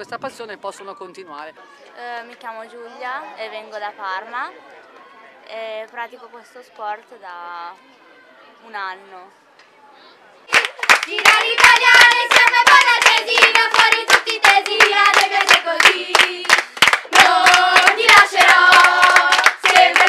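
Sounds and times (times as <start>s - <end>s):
hands clapping in time: 10.5s - 20.0s
girls singing a cheer: 10.9s - 20.0s.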